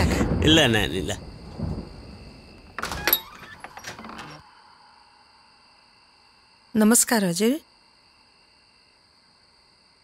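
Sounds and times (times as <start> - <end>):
wooden door clattering open: 2.6 - 4.5.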